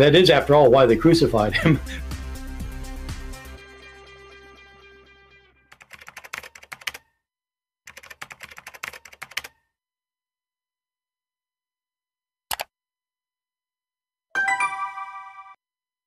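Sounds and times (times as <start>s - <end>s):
music: 0.0s - 5.7s, 14.4s - 15.6s.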